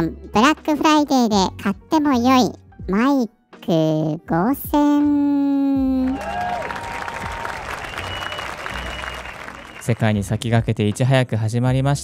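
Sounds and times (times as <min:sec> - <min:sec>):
crowd clapping: 0:06.0 - 0:10.4.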